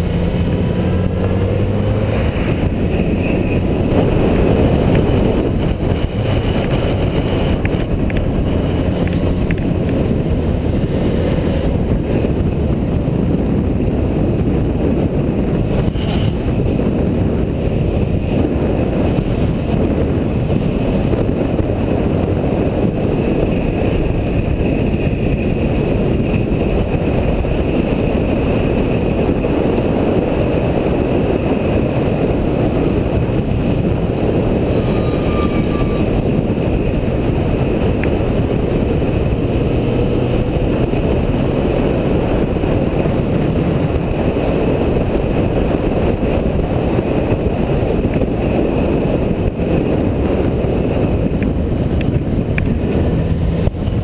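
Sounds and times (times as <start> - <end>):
motorcycle engine running: 0.0 - 54.0
wind on microphone: 0.0 - 54.0.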